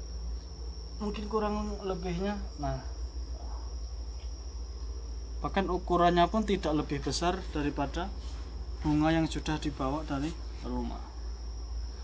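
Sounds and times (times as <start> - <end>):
cricket trilling: 0.0 - 12.0.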